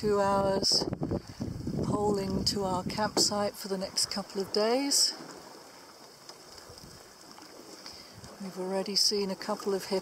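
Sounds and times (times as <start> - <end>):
faint water noise: 0.0 - 10.0.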